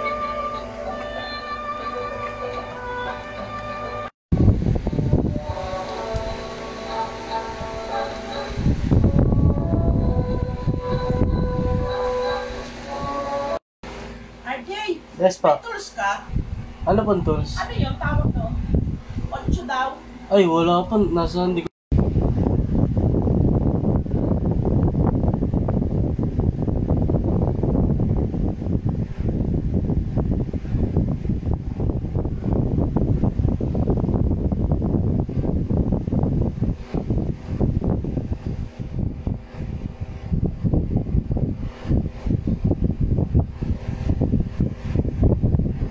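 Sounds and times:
wind buffeting microphone: 0:04.3 - 0:13.3, 0:16.2 - 0:19.9, 0:20.8 - 0:45.9.

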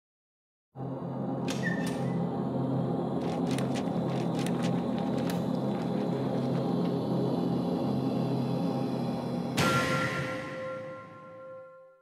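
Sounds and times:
low gong-like drone: 0:06.0 - 0:12.0.

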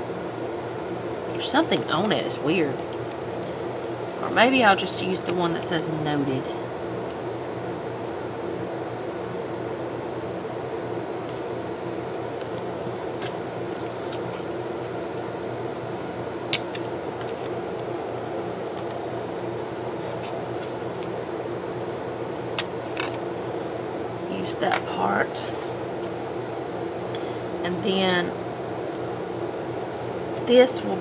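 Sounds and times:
steady background hum: 0:00.0 - 0:31.0
tape and stickers crinkling: 0:01.3 - 0:04.3, 0:12.1 - 0:14.6, 0:16.6 - 0:19.0.

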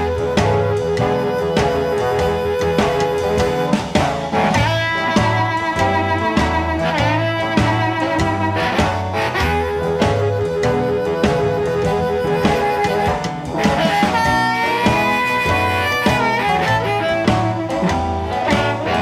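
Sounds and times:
blues band playing: 0:00.0 - 0:19.0
lead instrument sliding notes: 0:00.0 - 0:19.0.

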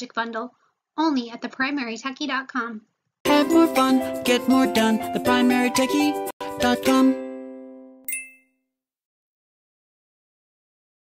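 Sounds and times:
bright ding: 0:08.1 - 0:08.6.

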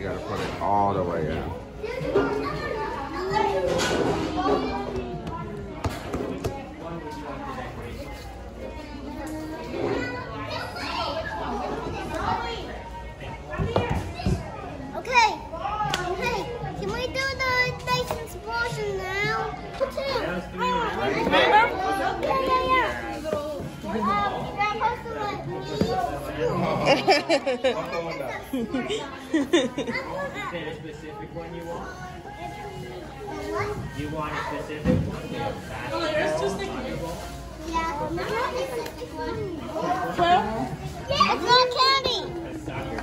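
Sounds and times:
children chattering and calling out: 0:00.0 - 0:43.0.

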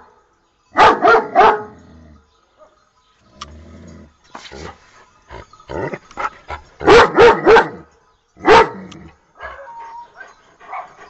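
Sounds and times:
dog barking: 0:00.8 - 0:01.7, 0:06.8 - 0:07.8, 0:08.4 - 0:08.8, 0:09.4 - 0:11.0.

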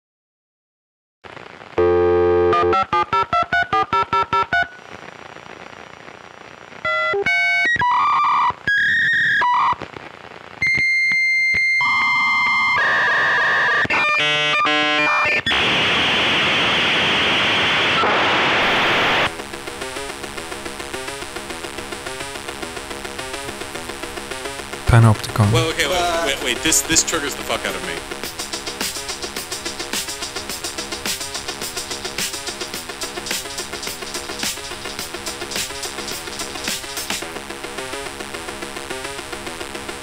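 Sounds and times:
steady high tone: 0:25.1 - 0:28.0
loud hissing noise: 0:25.5 - 0:37.2.

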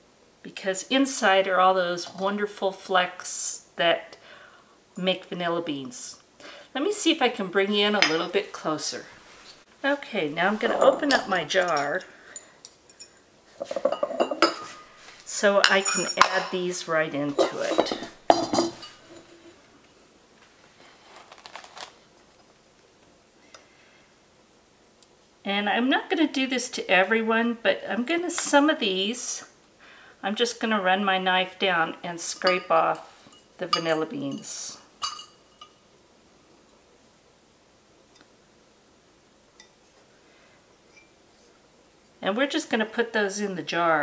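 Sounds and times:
utensil clink with ringing: 0:15.6 - 0:16.5, 0:33.3 - 0:35.8.

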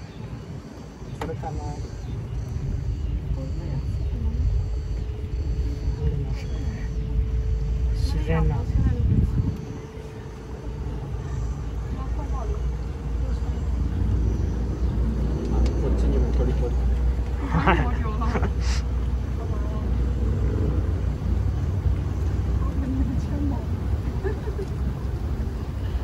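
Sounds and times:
boat motor rumbling: 0:00.0 - 0:26.0.

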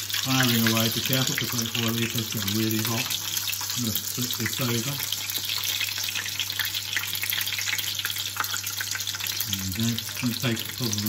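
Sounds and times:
prawn sizzling in hot oil: 0:00.0 - 0:11.0.

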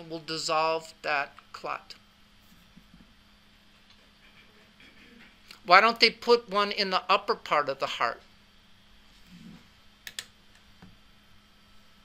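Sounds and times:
sharp clicks: 0:10.0 - 0:10.3.

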